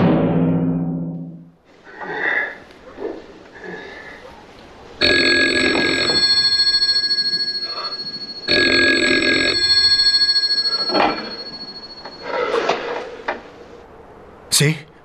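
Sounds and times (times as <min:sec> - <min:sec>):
telephone bell ringing: 0:05.0 - 0:13.1.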